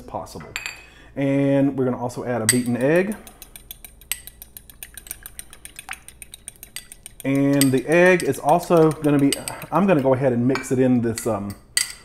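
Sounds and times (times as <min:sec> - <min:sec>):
fork clicking against glass: 0:02.5 - 0:10.1.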